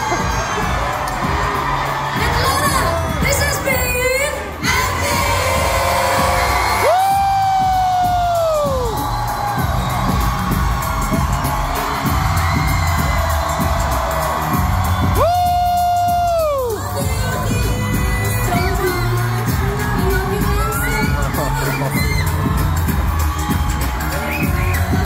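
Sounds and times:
crowd noise: 0.0 - 25.0
live pop music with singing: 0.0 - 25.0.

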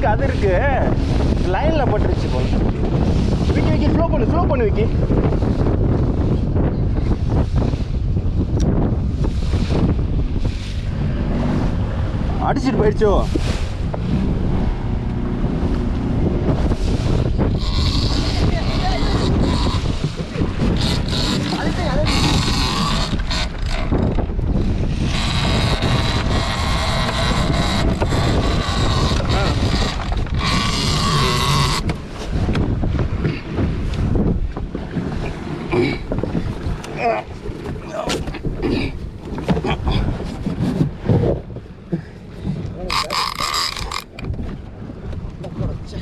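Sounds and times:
steady low rumble: 0.0 - 30.4
water splashing along boat hull: 0.0 - 46.0
wind buffeting microphone: 0.0 - 46.0.

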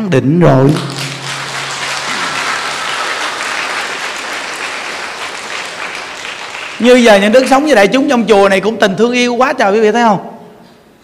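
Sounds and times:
audience applauding: 0.7 - 7.9
person speaking: 6.8 - 9.0.

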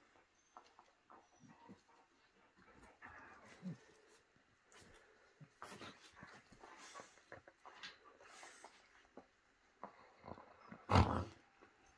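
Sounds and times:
faint dog sounds: 0.0 - 11.9.

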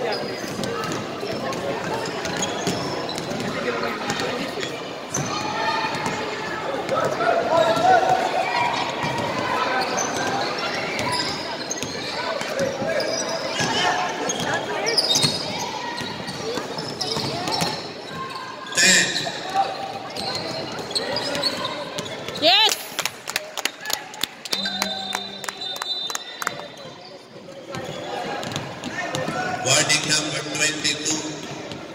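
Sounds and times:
people calling out: 24.6 - 26.4.

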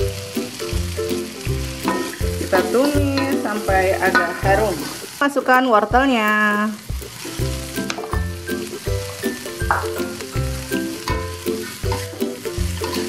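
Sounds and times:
vegetables sizzling in a wok: 0.0 - 13.0
music with bass beat: 6.9 - 13.0
metal spatula scraping a pan: 11.0 - 13.0.

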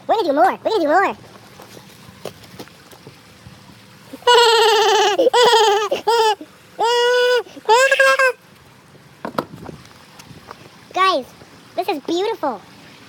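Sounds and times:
high-pitched voice wailing: 4.2 - 8.4.

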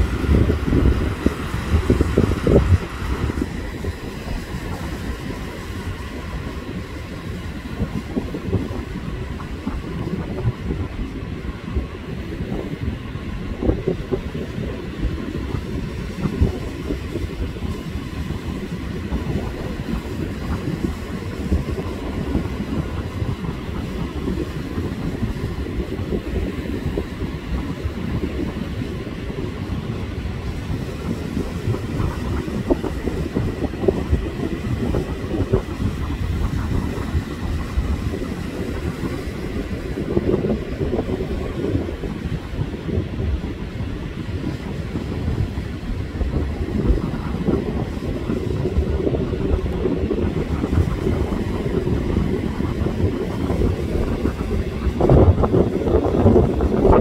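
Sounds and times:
ocean surf breaking: 0.0 - 57.0.

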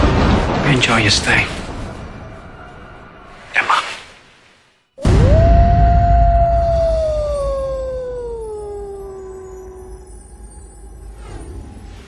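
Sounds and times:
deep low rumble: 5.0 - 10.4
wolf howling: 5.0 - 10.8.

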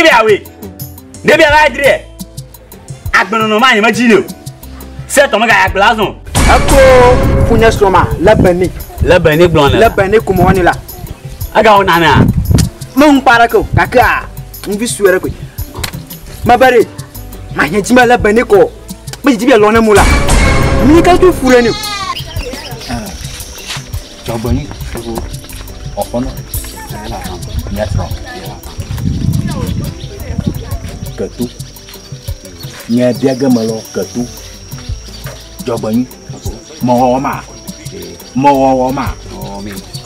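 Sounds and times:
background music with high tone: 0.0 - 40.0.

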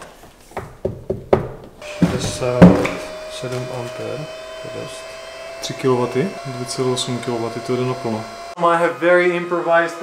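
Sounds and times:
power cable plugging knocks: 0.9 - 3.7
battery charger whine: 1.8 - 8.6.

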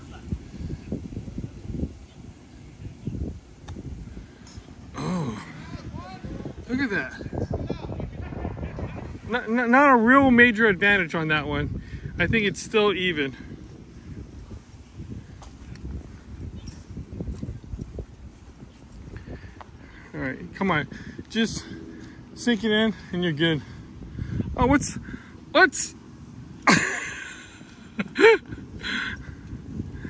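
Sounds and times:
faint outdoor air hiss: 0.0 - 30.0
people speaking: 5.0 - 13.4
footsteps on grass: 13.5 - 24.1.

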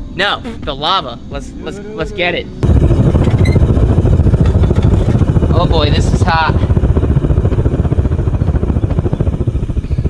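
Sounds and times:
furnace burner rumbling: 2.0 - 10.0.

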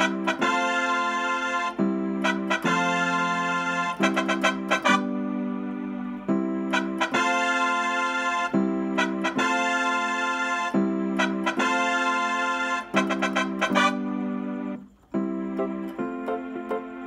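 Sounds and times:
electronic keyboard organ chords: 0.0 - 17.0.

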